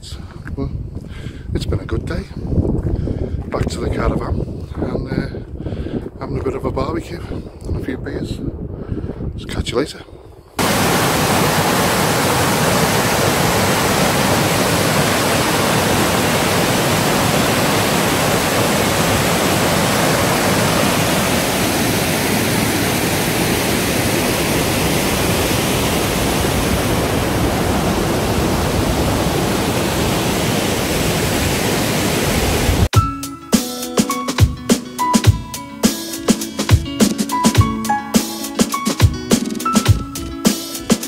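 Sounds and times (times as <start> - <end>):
stream rushing over boulders: 10.6 - 32.9.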